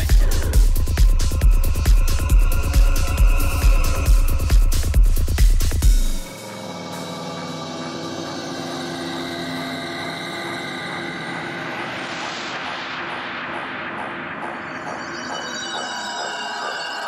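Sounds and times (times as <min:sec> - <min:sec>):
droning synth chords: 0:06.0 - 0:17.0.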